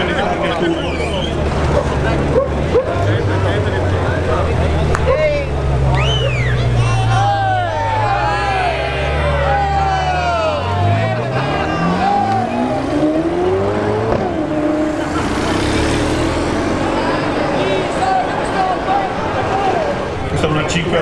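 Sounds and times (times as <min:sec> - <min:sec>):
car engine accelerating: 0:00.0 - 0:21.0
spectator voices: 0:06.6 - 0:20.3.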